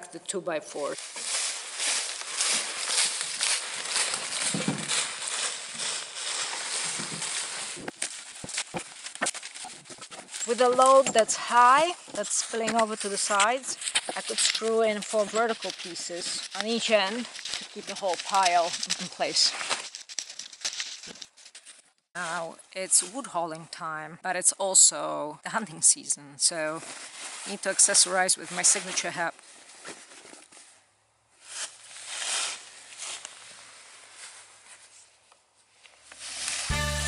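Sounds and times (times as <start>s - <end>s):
cart rustling over leaves: 0.7s - 21.3s, 26.6s - 30.5s, 31.4s - 35.0s, 36.0s - 37.0s
footsteps crunching dry leaves: 0.8s - 21.8s, 31.4s - 35.0s, 36.1s - 37.0s.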